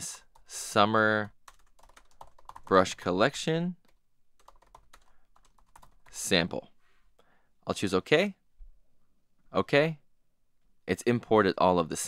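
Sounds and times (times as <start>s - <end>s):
typing on computer keyboard: 1.4s - 2.8s, 3.9s - 6.1s.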